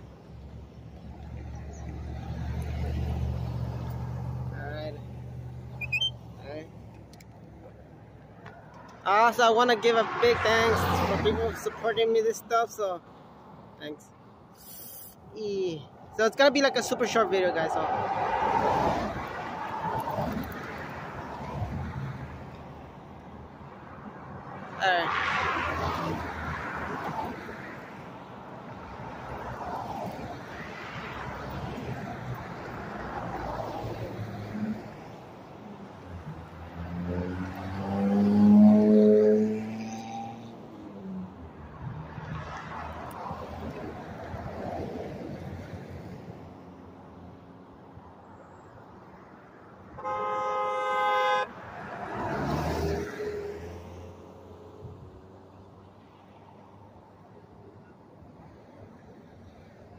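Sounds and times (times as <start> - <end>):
cars passing: 0.0 - 59.9
car horn honk: 5.8 - 6.2, 50.0 - 51.5.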